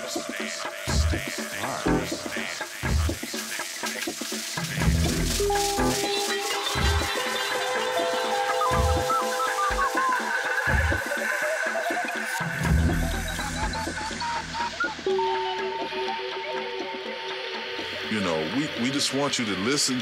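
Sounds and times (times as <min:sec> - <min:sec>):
fast high ticking percussion: 0:00.0 - 0:15.1.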